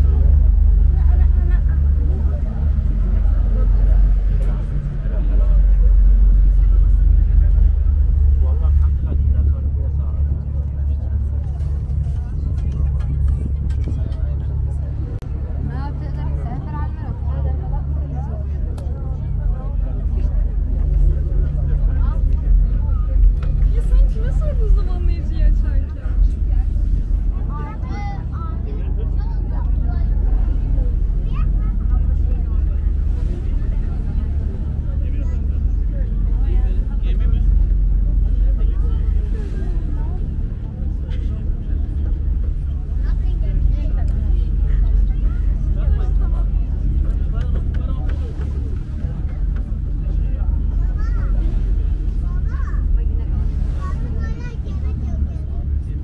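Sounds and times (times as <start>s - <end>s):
ferry engine droning: 0.0s - 56.0s.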